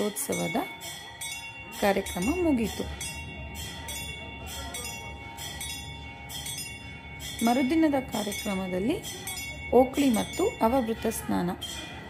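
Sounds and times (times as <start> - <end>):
temple bell ringing: 0.0 - 12.0.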